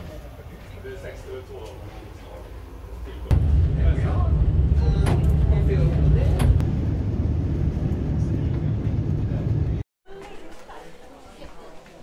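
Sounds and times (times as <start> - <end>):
electric railcar rumbling: 2.2 - 9.8.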